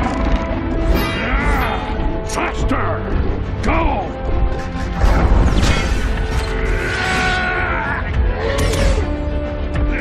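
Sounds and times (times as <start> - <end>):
film score: 0.0 - 10.0.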